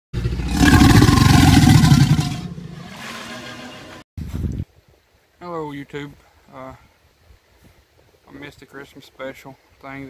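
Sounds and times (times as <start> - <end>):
rough rumbling roar: 0.2 - 4.0.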